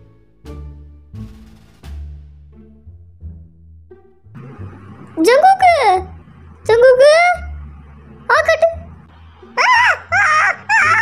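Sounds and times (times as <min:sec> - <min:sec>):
high-pitched vocal squeals: 0:09.6 - 0:11.0.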